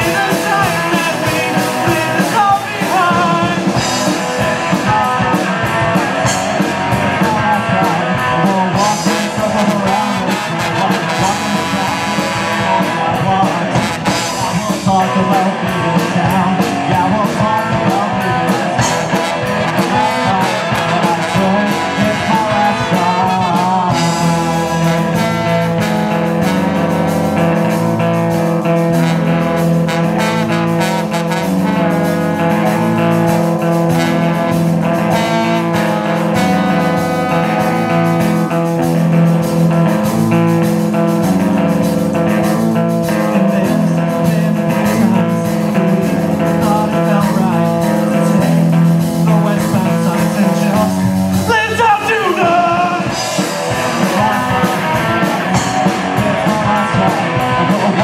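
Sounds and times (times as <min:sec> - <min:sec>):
ska punk band playing: 0:00.0 - 0:58.0
trumpet and trombone lines: 0:08.2 - 0:15.5, 0:18.8 - 0:58.0.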